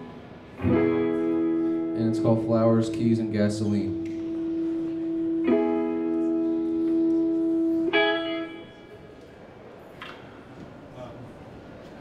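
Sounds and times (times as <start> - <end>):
guitar chords ringing: 0.5 - 9.2.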